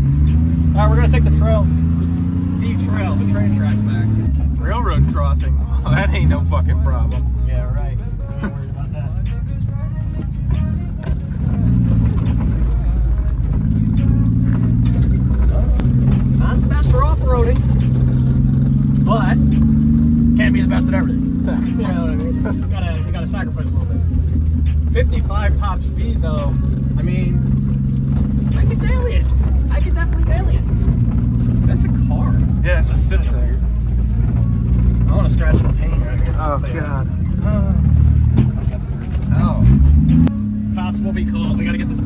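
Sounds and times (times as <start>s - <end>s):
truck engine humming while driving: 0.0s - 42.0s.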